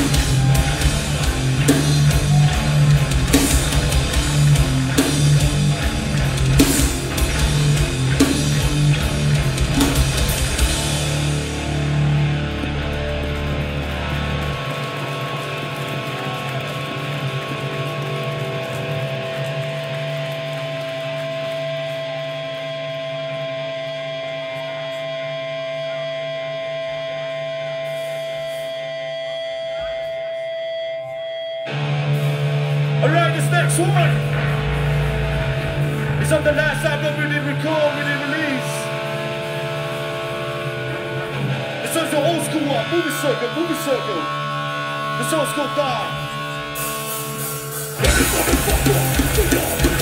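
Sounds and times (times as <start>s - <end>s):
pounding drums: 0.0s - 11.8s, 48.0s - 50.0s
heavy distorted guitars: 0.0s - 50.0s.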